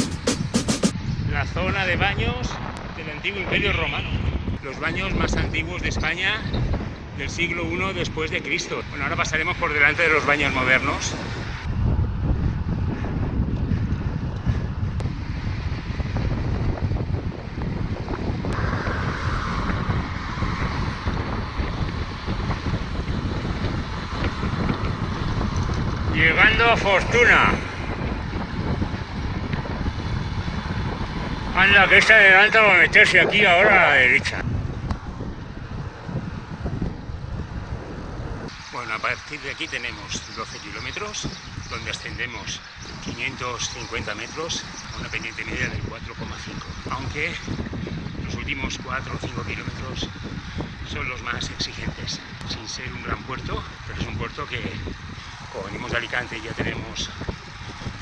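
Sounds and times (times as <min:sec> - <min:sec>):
wind rushing over microphone: 0:00.0 - 0:58.0.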